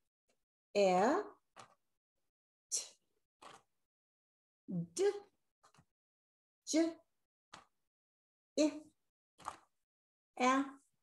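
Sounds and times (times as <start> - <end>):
woman saying a letter sound: 0.8 - 1.4, 4.7 - 5.3, 8.6 - 8.9, 10.4 - 10.8.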